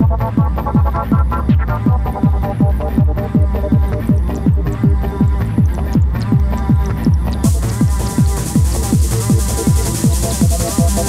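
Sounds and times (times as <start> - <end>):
trance kick drum: 0.0 - 11.0.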